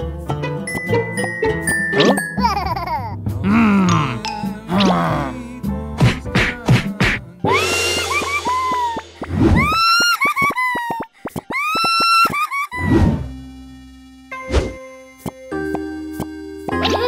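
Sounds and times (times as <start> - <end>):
music: 0.0 - 9.9, 13.3 - 17.0.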